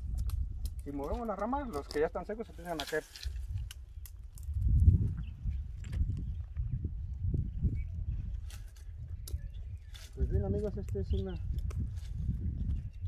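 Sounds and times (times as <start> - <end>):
branches being shaken with a pole: 0.0 - 4.6, 8.3 - 9.0, 9.8 - 10.3
dry pods dropping clicks and rustles: 0.0 - 4.8.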